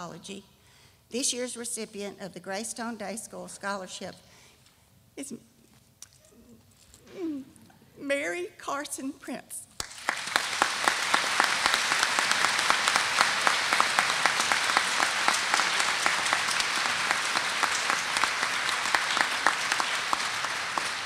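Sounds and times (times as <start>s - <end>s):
audience applauding: 9.8s - 21.0s.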